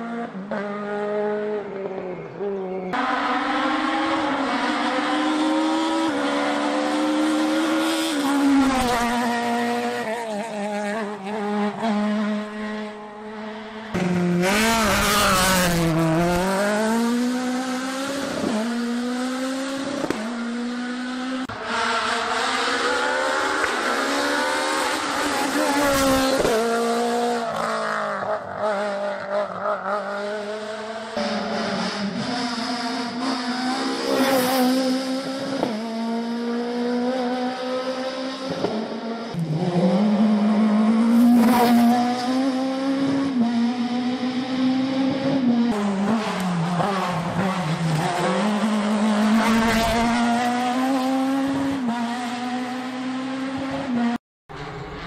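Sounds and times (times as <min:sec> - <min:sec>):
rally car engines passing: 0:00.0 - 0:55.0.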